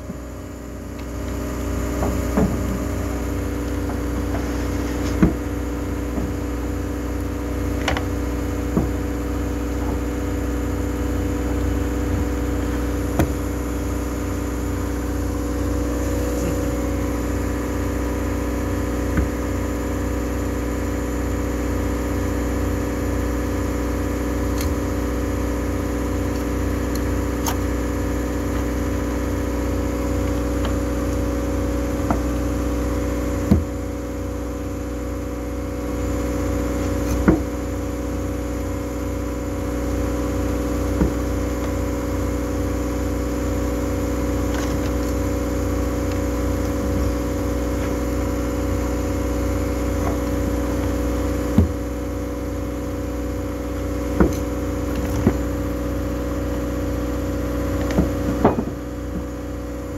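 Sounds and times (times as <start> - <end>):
machinery drone: 0.0 - 59.9.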